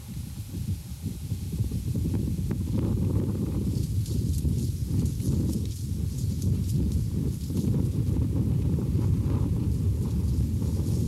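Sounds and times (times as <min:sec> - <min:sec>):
wind buffeting microphone: 0:00.0 - 0:11.0
footsteps in dry sand: 0:03.1 - 0:11.0.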